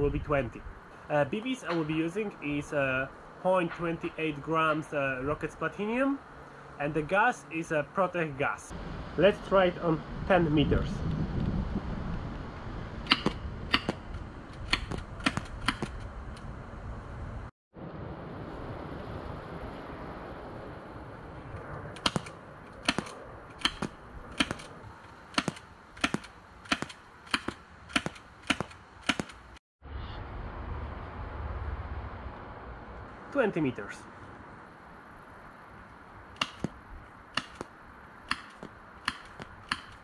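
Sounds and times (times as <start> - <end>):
wind rumble on microphone: 0.0 - 0.8, 8.7 - 25.0
airsoft pistol clicking shots: 13.1 - 14.0, 22.0 - 24.7, 25.3 - 29.4, 36.4 - 36.8, 37.4 - 37.7, 38.3 - 40.0.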